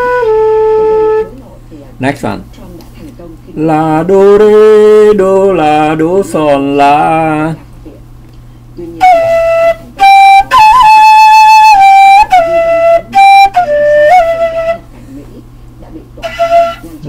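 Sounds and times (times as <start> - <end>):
flute melody: 0.0 - 1.4, 9.0 - 15.0, 16.2 - 17.0.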